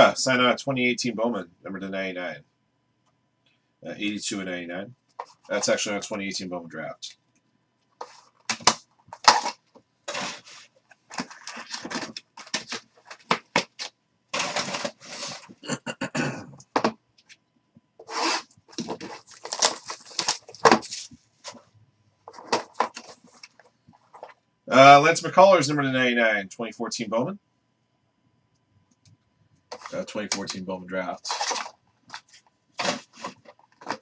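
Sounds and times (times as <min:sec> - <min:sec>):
plastic card holders rustling: 0:08.0 - 0:15.6, 0:18.0 - 0:21.7, 0:22.3 - 0:24.4, 0:29.7 - 0:30.6, 0:31.2 - 0:34.0.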